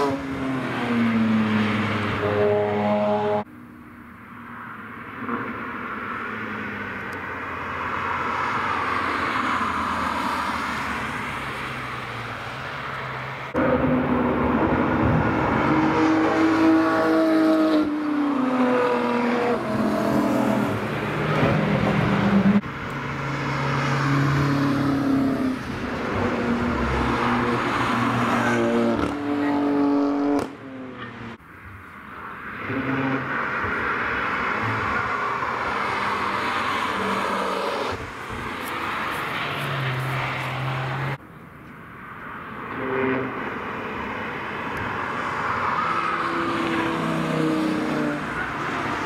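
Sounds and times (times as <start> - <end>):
racing cars passing: 0.0 - 3.5, 4.3 - 41.2, 42.0 - 49.0.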